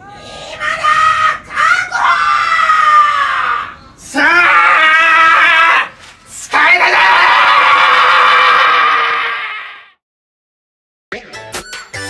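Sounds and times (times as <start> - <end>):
man yelling: 4.0 - 8.8.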